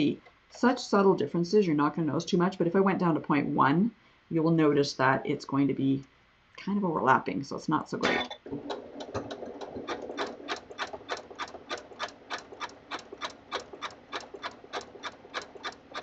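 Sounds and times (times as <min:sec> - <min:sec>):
sewing machine clicking: 0:08.0 - 0:16.0
sewing machine motor hum: 0:08.1 - 0:16.0.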